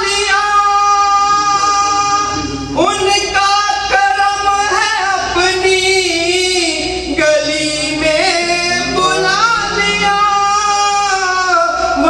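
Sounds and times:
man singing long note: 7.4 - 12.0.

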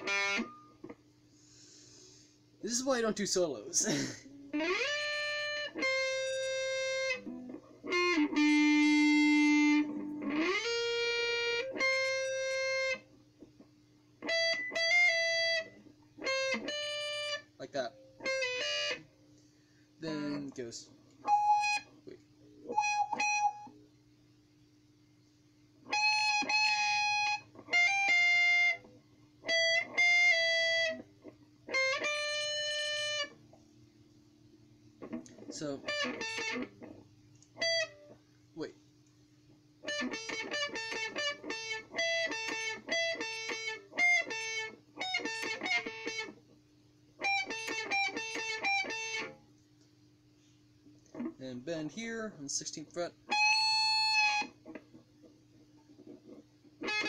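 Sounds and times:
electric guitar solo: 0.0 - 1.0, 2.8 - 13.1, 14.2 - 19.1, 21.2 - 21.9, 22.6 - 23.8, 25.9 - 33.4, 35.0 - 38.2, 39.8 - 46.4, 47.2 - 49.4, 53.3 - 54.8, 55.9 - 57.0
steady low hum: 0.0 - 25.9.

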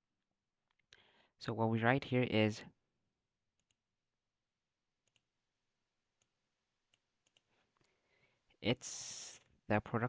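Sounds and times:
computer mouse clicks: 5.0 - 5.3, 6.9 - 8.0.

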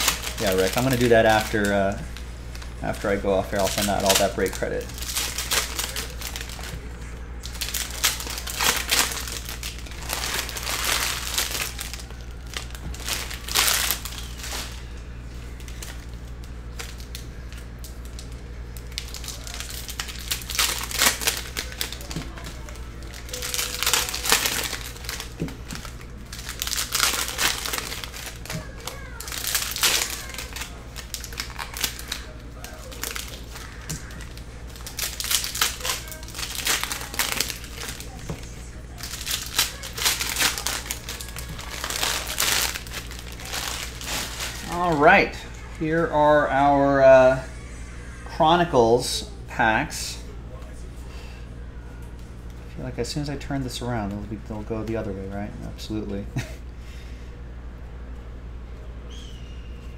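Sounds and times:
plastic wrappers crinkling: 0.0 - 47.5
steady low hum: 0.0 - 59.9.

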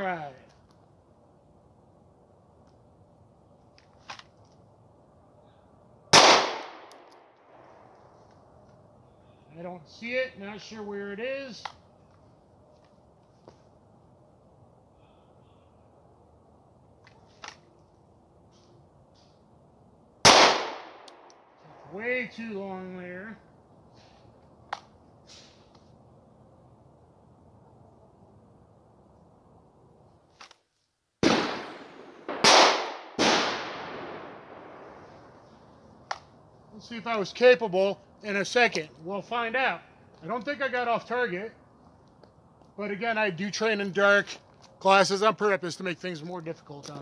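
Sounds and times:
pistol shots with echo: 6.1 - 7.2, 20.2 - 21.3, 31.2 - 35.1.

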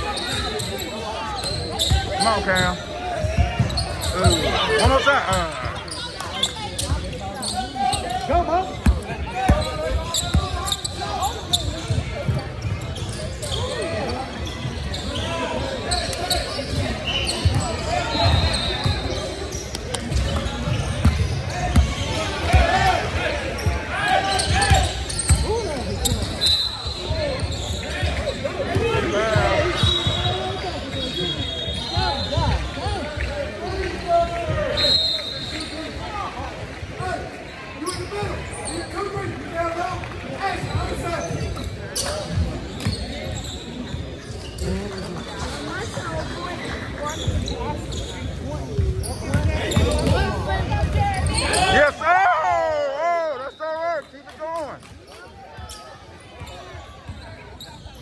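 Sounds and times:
sneakers squeaking: 0.0 - 36.3, 37.0 - 39.5, 40.5 - 52.0, 53.2 - 58.0
indistinct voices in echoing hall: 0.0 - 58.0
ball bouncing on hardwood court: 20.1 - 22.6.

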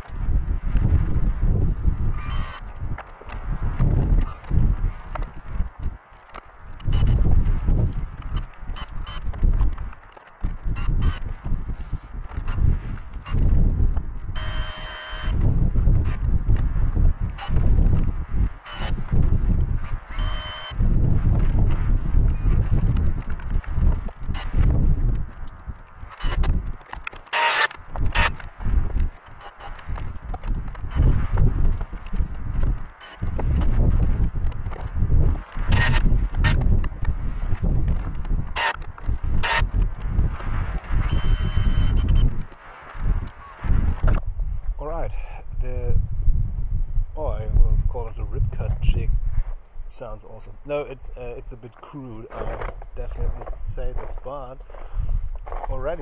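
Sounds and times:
wind buffeting microphone: 0.0 - 56.0
short whirring burst: 2.1 - 2.7, 14.4 - 15.4, 18.5 - 19.1, 19.8 - 20.8, 27.2 - 28.5, 35.4 - 36.6, 38.5 - 43.7.

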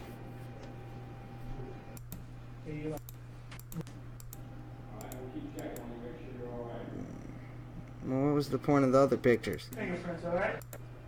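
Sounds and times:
steady low hum: 0.0 - 11.0
sharp irregular clicks: 10.6 - 10.9.

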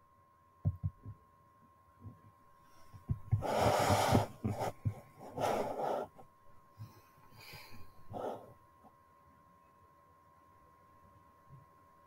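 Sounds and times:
soft low thumps: 0.6 - 1.2, 2.9 - 5.5.

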